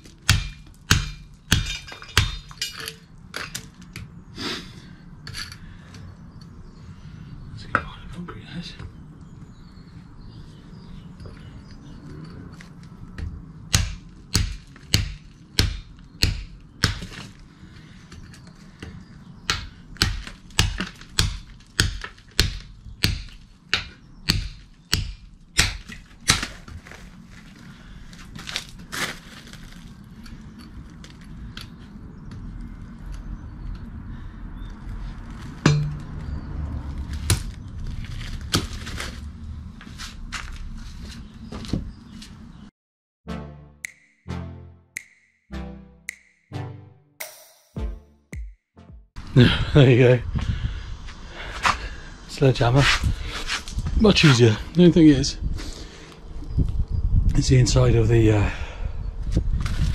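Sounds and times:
hammer striking a chisel on concrete: 0.2 - 3.0, 13.7 - 17.1, 19.5 - 26.0, 35.6 - 36.2, 47.2 - 48.5.

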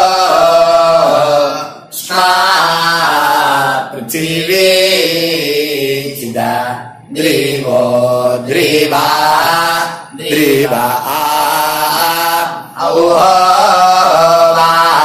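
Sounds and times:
mantra chanted: 0.0 - 15.0.

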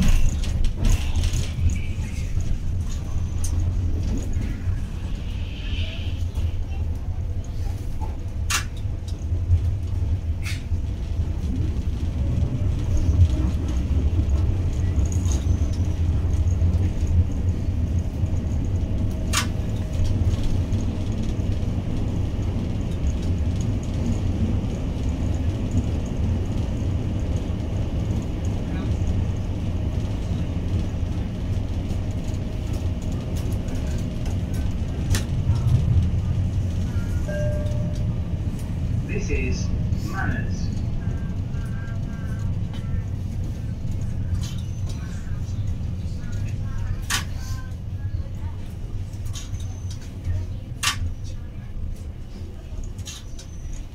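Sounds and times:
low rumble of train wheels: 0.0 - 53.9.

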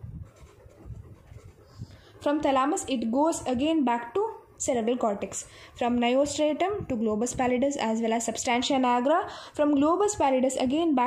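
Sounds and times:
pen scratching on paper: 0.0 - 7.6.

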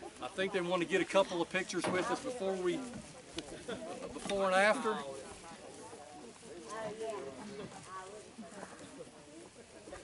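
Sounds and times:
indistinct group talk: 0.0 - 10.0.

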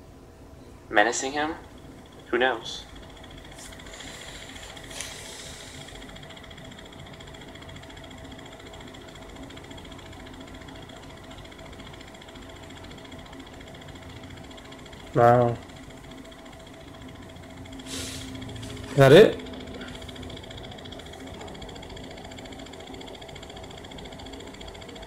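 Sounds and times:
hiss: 17.8 - 18.4.

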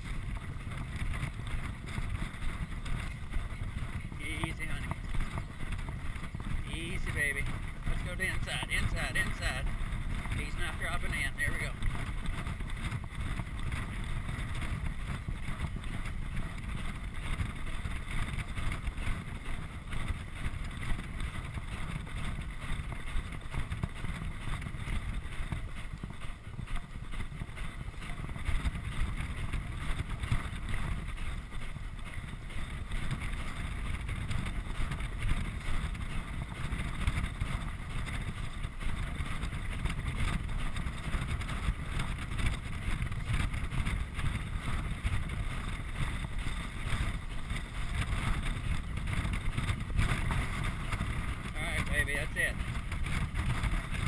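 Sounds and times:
horse hoofbeats on dirt: 0.0 - 54.0
wind rushing over microphone: 0.0 - 54.0.

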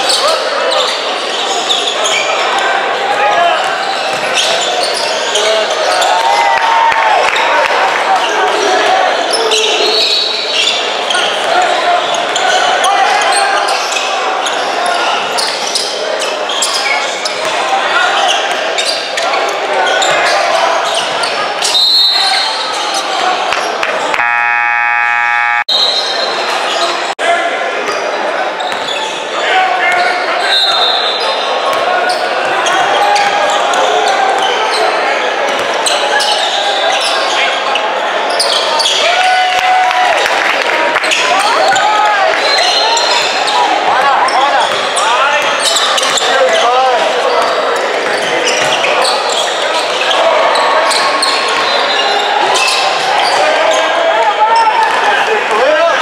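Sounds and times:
sneaker squeaks: 0.0 - 2.6, 3.4 - 6.2, 9.3 - 17.6, 18.2 - 23.3, 24.2 - 27.0, 27.9 - 39.0, 42.4 - 54.0
scoreboard buzzer: 24.1 - 25.8.

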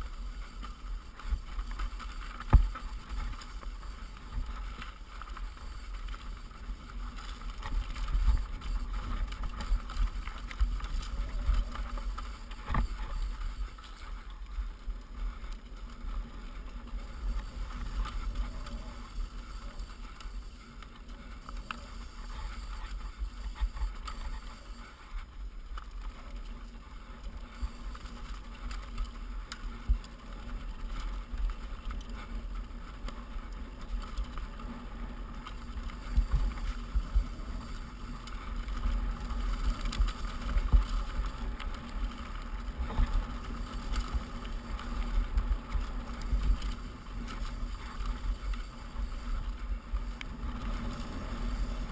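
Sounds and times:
bike clicks and rattles: 0.0 - 51.9
bike tyres rolling over loose rock: 0.0 - 51.9.

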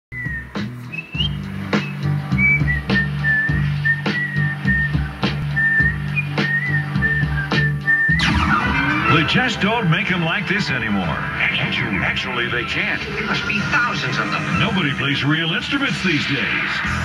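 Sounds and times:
whistled melody: 0.1 - 9.6
bass line: 0.1 - 17.0
song on radio: 0.2 - 17.0
drum hits: 8.2 - 10.7.

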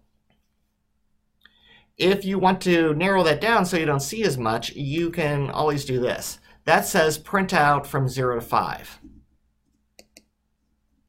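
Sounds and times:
computer mouse clicks: 9.6 - 10.4.

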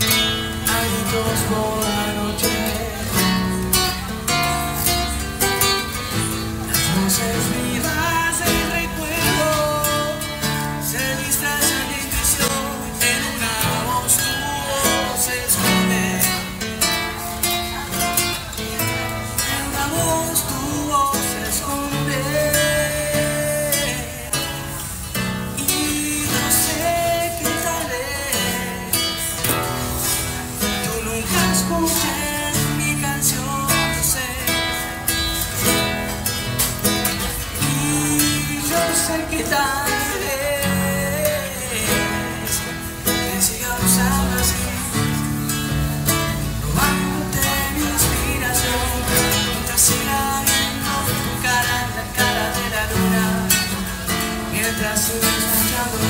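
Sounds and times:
acoustic guitar strumming: 0.0 - 56.0
man singing: 0.0 - 56.0.

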